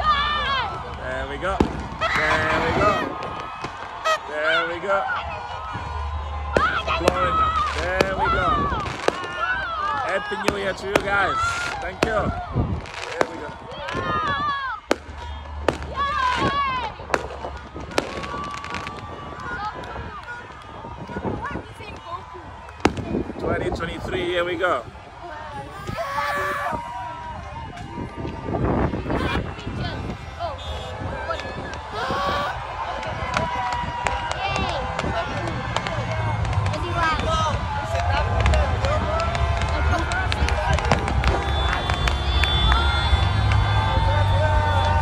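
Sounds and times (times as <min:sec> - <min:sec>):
outdoor crowd: 0:00.0 - 0:45.0
firework crack: 0:00.4 - 0:04.3, 0:05.6 - 0:23.4, 0:30.9 - 0:44.0.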